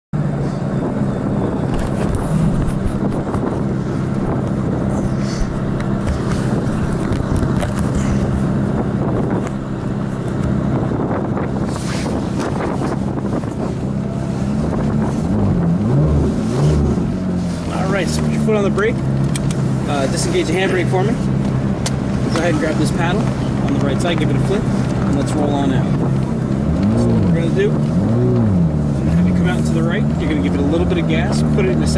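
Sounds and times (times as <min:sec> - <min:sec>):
car engine idling: 0:00.2 - 0:31.9.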